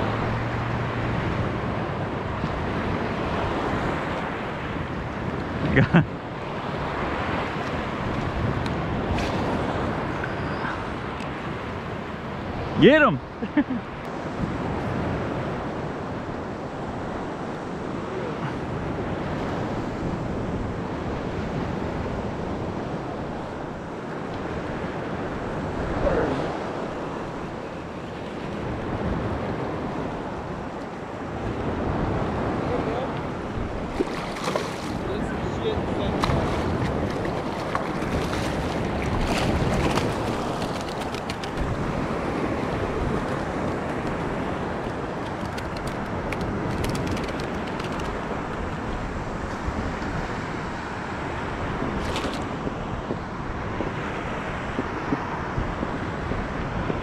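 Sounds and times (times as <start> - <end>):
surf water lapping and sloshing: 0.0 - 57.0
wind buffeting microphone: 14.1 - 57.0
sharp splashes: 33.8 - 35.1, 36.1 - 41.4.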